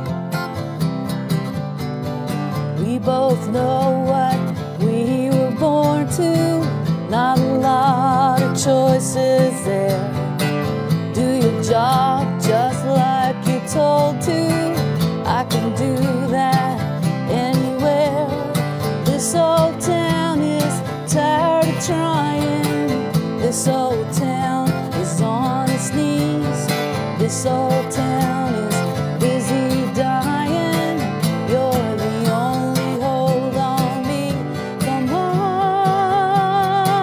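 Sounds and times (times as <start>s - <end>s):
acoustic guitar strumming: 0.0s - 37.0s
woman singing with vibrato: 2.7s - 37.0s.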